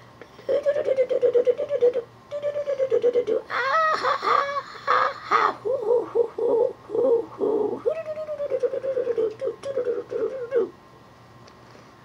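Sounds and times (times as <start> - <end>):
man doing hooting puppet laugh: 0.4 - 10.7.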